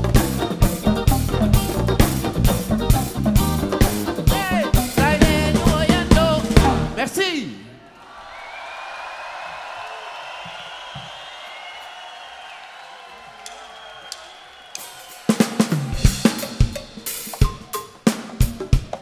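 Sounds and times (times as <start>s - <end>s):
rock drum kit playing: 0.0s - 7.0s, 14.8s - 19.0s
crowd cheering: 0.0s - 18.8s.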